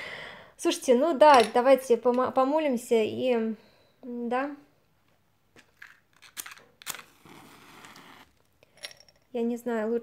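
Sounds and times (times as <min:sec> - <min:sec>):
match flaring hiss: 0:07.0 - 0:08.4
match scraped against matchbox: 0:07.1 - 0:08.4.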